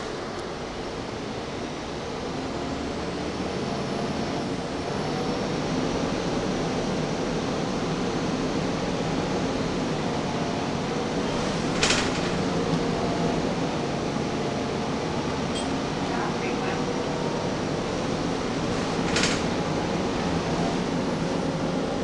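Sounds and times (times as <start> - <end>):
bus engine and road noise: 0.0 - 22.0
cooling fans running: 0.0 - 22.0.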